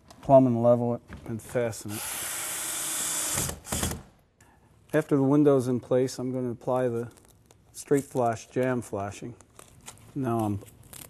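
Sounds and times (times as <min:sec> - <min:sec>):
cordless drill whirring: 0:01.9 - 0:04.0.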